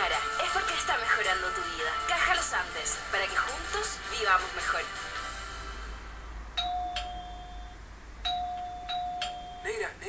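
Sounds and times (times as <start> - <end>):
doorbell chime ringing: 6.6 - 9.7.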